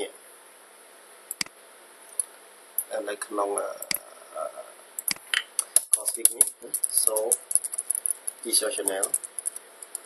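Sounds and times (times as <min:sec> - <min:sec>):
keyboard keys clicking: 0:05.0 - 0:10.0.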